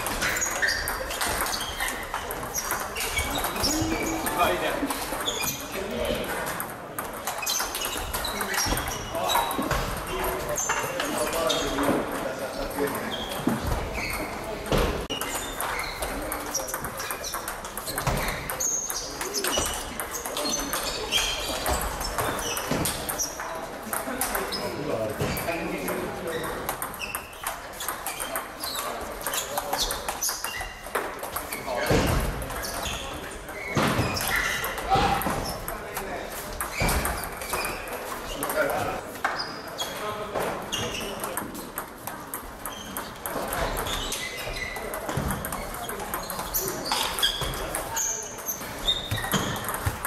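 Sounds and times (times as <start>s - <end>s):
short high squeaks: 0.0s - 4.4s, 42.6s - 44.8s, 45.5s - 49.8s
table tennis balls clicking: 0.0s - 50.0s
voices murmuring: 0.0s - 50.0s.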